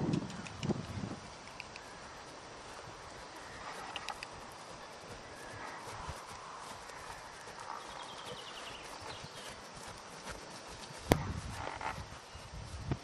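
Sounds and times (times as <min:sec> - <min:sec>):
faint horse hoofbeats on grass: 0:00.0 - 0:13.0.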